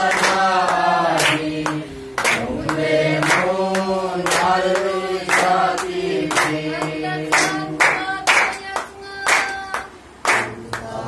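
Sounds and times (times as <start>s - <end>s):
group singing a christmas song: 0.0s - 11.0s
hand clapping in time: 0.0s - 11.0s.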